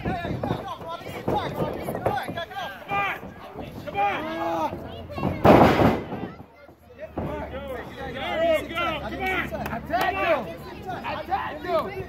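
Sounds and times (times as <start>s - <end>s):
people shouting: 2.5s - 5.4s.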